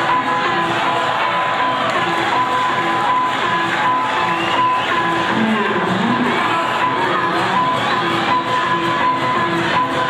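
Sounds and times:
crowd noise: 0.0s - 10.0s
loud music with repeating high note: 0.0s - 10.0s.

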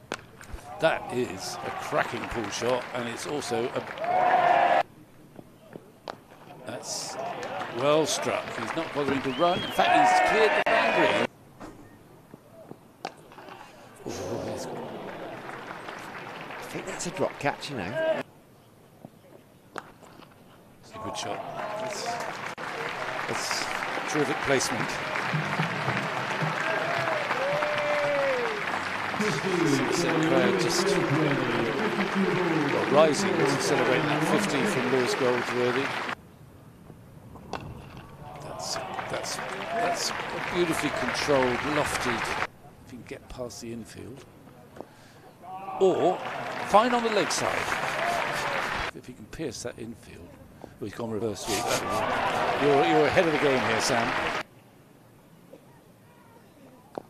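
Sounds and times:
low ground noise: 4.9s - 57.0s
crowd noise: 6.0s - 11.3s, 13.3s - 18.2s, 20.8s - 36.2s, 38.0s - 43.1s, 45.4s - 49.0s, 51.1s - 54.5s.

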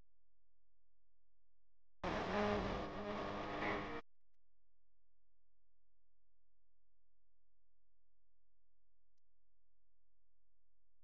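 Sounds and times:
low steady buzzing: 2.0s - 4.0s.

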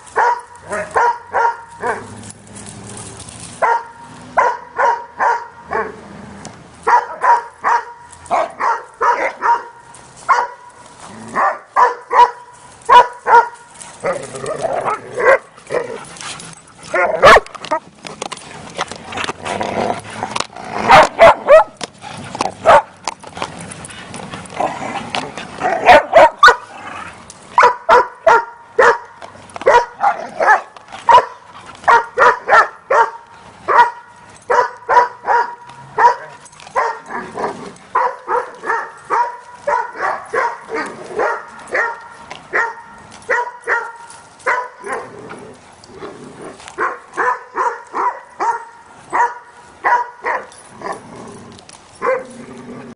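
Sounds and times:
dogs barking: 0.0s - 2.2s, 3.6s - 6.0s, 6.8s - 17.8s, 20.8s - 23.0s, 25.6s - 26.7s, 27.6s - 45.2s, 46.8s - 51.0s, 52.0s - 52.4s
dogs scuffling: 0.0s - 4.5s, 6.8s - 45.9s.

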